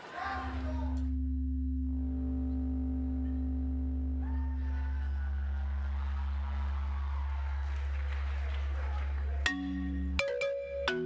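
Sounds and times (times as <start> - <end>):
sustained droning tones: 0.3 - 8.5
steady low hum: 0.3 - 9.4.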